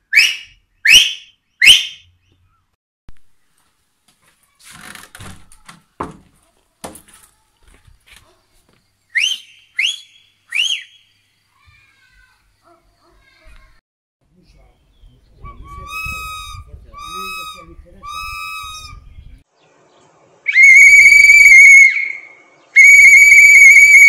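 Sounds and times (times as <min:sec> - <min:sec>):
rustling: 0:03.5 - 0:08.9
knocks: 0:05.1 - 0:07.1
loud rising whistles: 0:09.2 - 0:11.0, 0:20.5 - 0:24.0.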